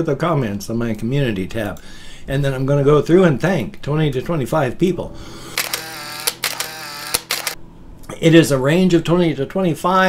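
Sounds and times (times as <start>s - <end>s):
steady hum: 4.4s - 8.2s
sharp clicks: 5.6s - 7.6s.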